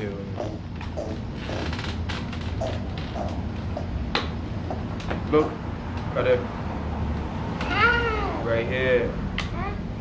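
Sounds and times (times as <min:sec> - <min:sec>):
toddler squealing and babbling: 0:07.6 - 0:08.4.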